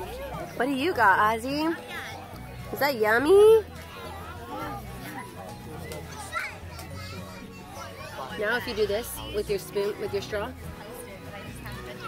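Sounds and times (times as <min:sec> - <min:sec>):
background music: 0:00.0 - 0:12.0
children's voices at play: 0:03.2 - 0:12.0.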